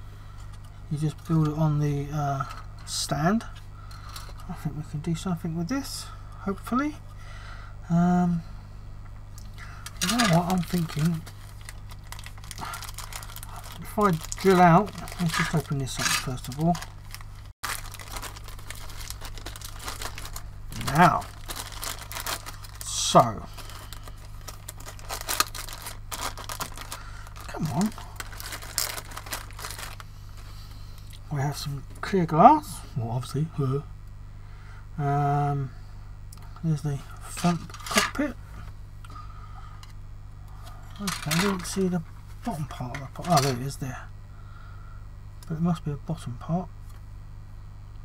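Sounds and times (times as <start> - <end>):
steady low hum: 0.0 - 48.0
plastic bag crinkling: 9.8 - 30.2, 41.0 - 41.8, 42.5 - 43.6.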